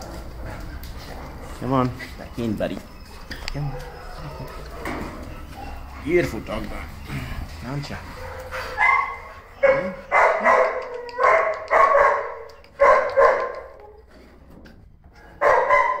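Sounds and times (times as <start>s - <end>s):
dog barking: 8.1s - 13.8s, 15.4s - 16.0s.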